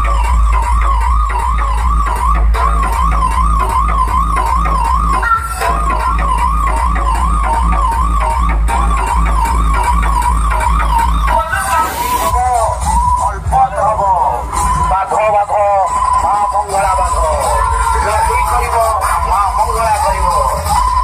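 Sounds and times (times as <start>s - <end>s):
siren-like warbling tone: 0.0s - 19.0s
heavy continuous bass: 0.0s - 21.0s.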